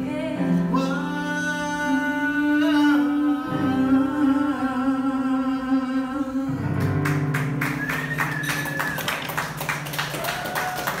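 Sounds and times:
audience clapping: 6.8s - 11.0s
whistles: 7.6s - 9.3s.

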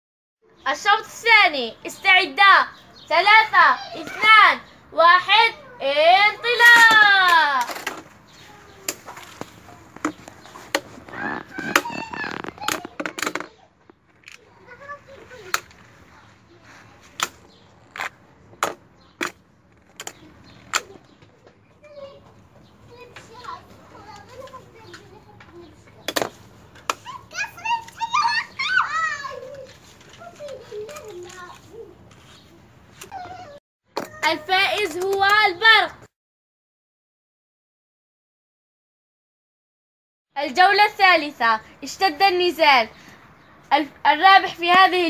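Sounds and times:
children's voices: 0.5s - 17.6s, 20.1s - 26.1s, 26.9s - 36.0s.

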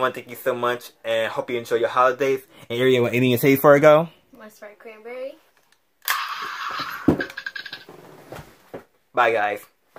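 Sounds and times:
toy gun harsh buzzing: 6.0s - 7.4s.

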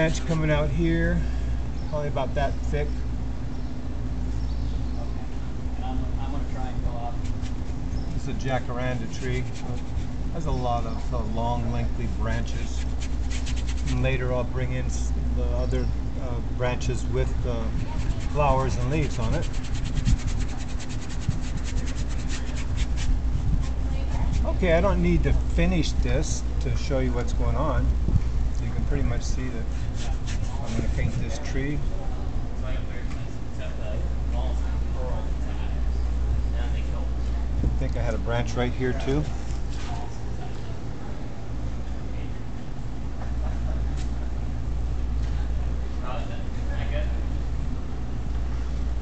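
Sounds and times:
street traffic engine rumble: 0.0s - 49.0s
brush scrubbing on canvas: 7.2s - 11.3s, 12.2s - 14.2s, 17.6s - 24.6s, 29.6s - 31.5s.

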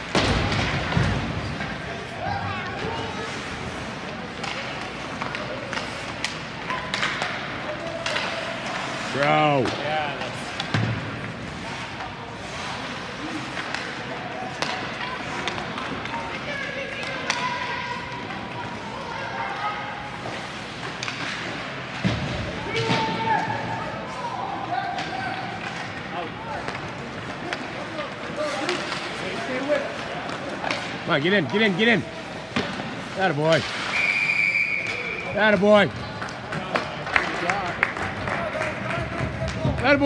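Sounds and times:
puck and sticks knocking boards: 0.0s - 1.9s, 4.0s - 12.4s, 13.5s - 18.3s, 20.2s - 23.8s, 24.9s - 34.0s, 34.9s - 40.0s
spectators chattering and calling: 0.0s - 40.0s.

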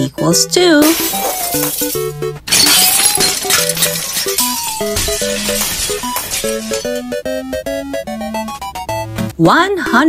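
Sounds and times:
melodic background music: 0.0s - 10.0s
glass shattering effect: 0.8s - 7.2s.

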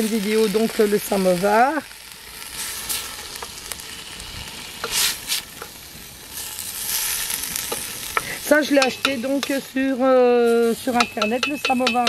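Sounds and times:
steady sizzle: 0.0s - 12.0s.

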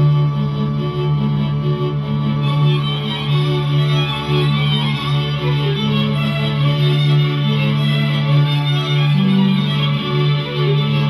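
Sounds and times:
violin low drone: 0.0s - 11.0s.

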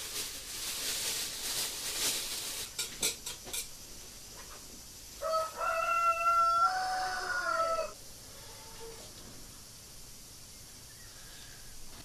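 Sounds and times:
rooster crowing: 5.2s - 9.1s.

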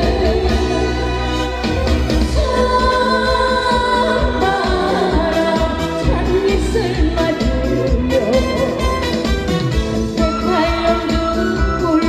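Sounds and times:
woman singing: 0.0s - 1.3s, 2.3s - 8.8s, 10.2s - 12.0s
instrumental music with bass beat: 0.0s - 12.0s.

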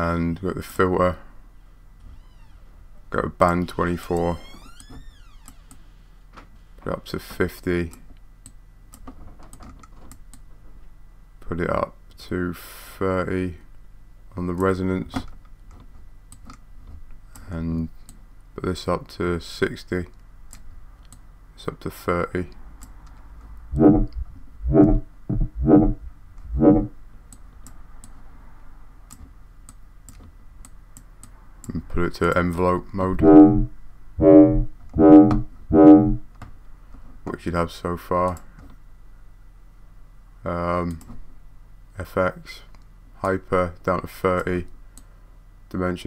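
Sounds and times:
low electrical hum: 0.0s - 46.0s
synth lead notes: 23.7s - 27.0s, 33.2s - 36.3s.

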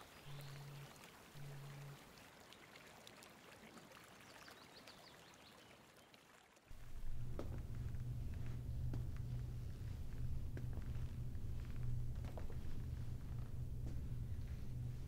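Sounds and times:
low pulsing note: 0.1s - 2.0s, 6.7s - 15.0s
loud low drone: 0.2s - 2.0s, 6.7s - 15.0s
soft rushing hiss: 6.7s - 15.0s.

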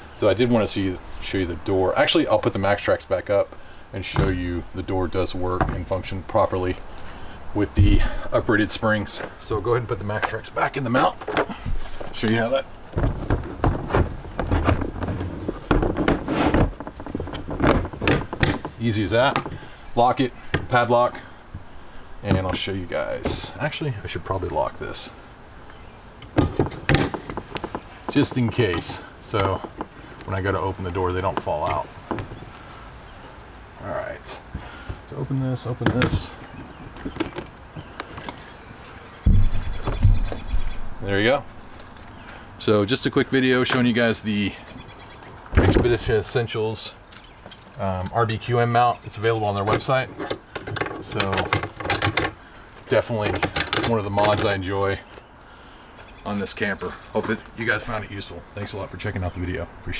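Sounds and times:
plastic boards clattering on metal: 11.2s - 19.6s, 26.3s - 29.9s, 49.7s - 52.4s, 53.2s - 54.6s
door swinging up rumble: 39.0s - 40.8s.

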